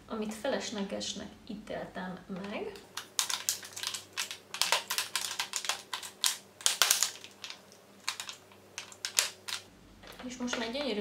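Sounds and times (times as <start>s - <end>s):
plastic tubes clicking together: 2.4s - 10.6s.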